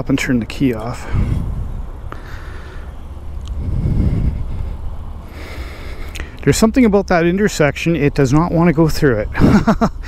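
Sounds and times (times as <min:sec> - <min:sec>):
road traffic rumble: 0:00.0 - 0:10.0
vehicle passing: 0:00.0 - 0:10.0.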